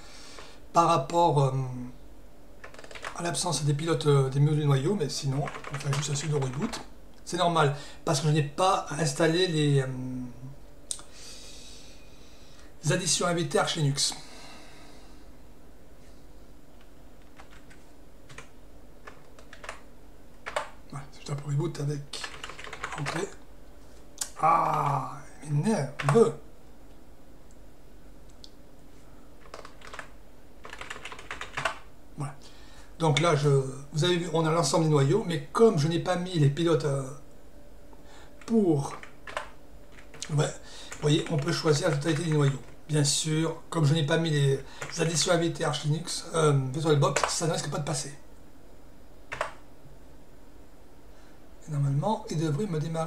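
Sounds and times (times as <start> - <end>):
faint low hum: 0.0 - 53.0
computer keyboard keystrokes: 2.6 - 3.2, 5.4 - 6.8, 17.3 - 19.8, 20.4 - 20.8, 22.2 - 23.3, 26.0 - 26.2, 29.4 - 31.8, 38.4 - 40.3, 40.9 - 42.7, 47.1 - 47.4, 49.3 - 49.6.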